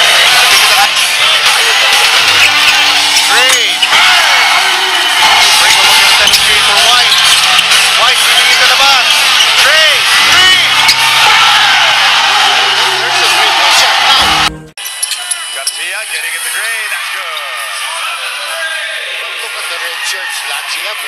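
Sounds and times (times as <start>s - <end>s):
loud arena music: 0.0s - 21.0s
voices in arena: 0.0s - 21.0s.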